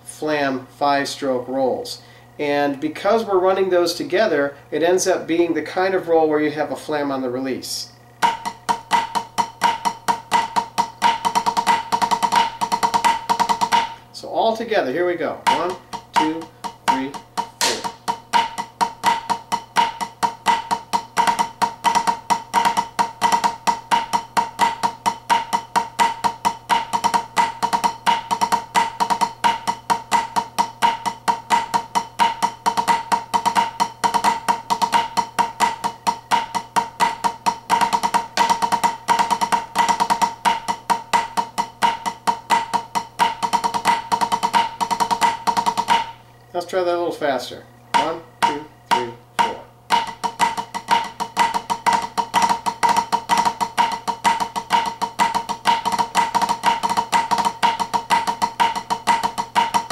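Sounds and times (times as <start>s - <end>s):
drumsticks on practice drum: 15.4s - 46.2s, 47.9s - 59.9s.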